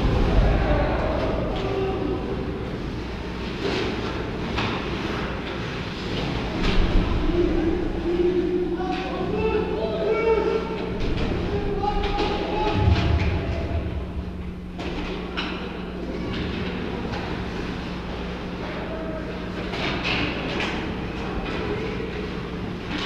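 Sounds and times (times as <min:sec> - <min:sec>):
arena hum and rumble: 0:00.0 - 0:23.0.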